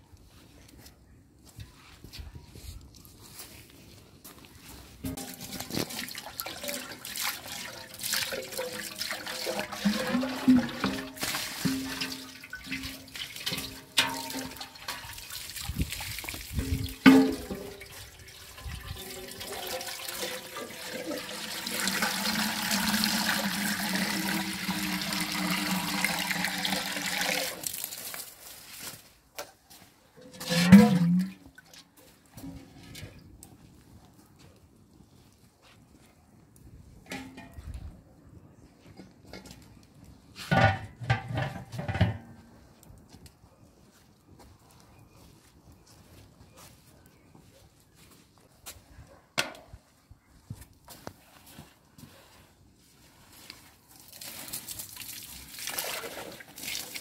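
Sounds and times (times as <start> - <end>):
hose water pouring into metal pot: 5.0 - 28.5, 30.2 - 31.8, 53.9 - 57.0.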